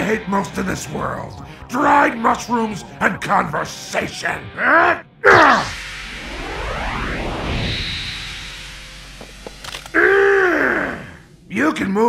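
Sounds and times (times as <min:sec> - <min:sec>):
rush of movement: 0:05.3 - 0:11.4
sharp clicks: 0:09.4 - 0:10.0.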